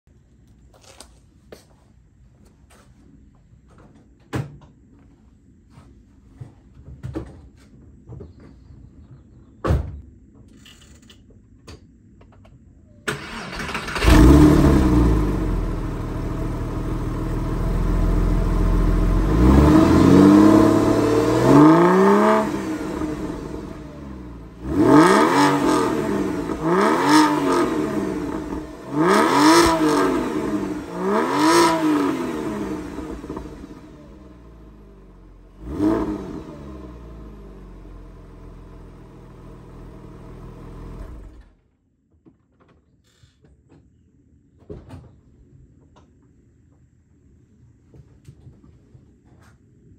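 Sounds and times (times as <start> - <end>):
car engine idling and revving: 13.1 - 41.6.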